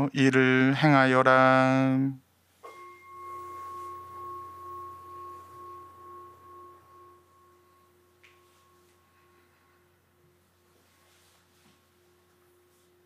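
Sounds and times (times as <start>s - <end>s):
altar bell ringing: 2.6s - 11.0s.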